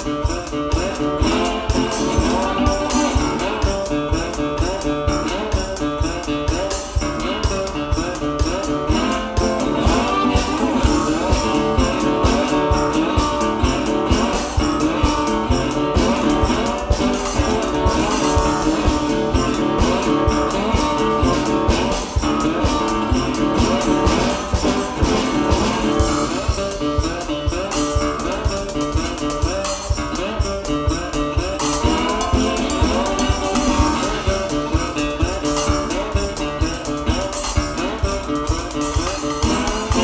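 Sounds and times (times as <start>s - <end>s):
blues slide guitar: 0.0s - 40.0s
drum kit steady beat: 0.0s - 40.0s.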